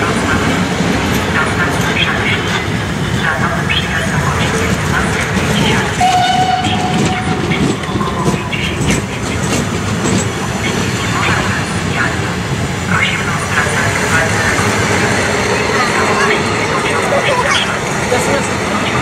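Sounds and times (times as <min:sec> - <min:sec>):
people's voices: 0:00.0 - 0:19.0
train wheels clattering over rails: 0:00.0 - 0:19.0.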